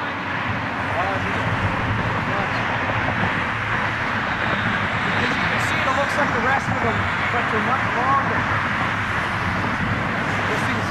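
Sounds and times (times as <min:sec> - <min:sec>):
jet engines rushing: 0:00.0 - 0:10.9.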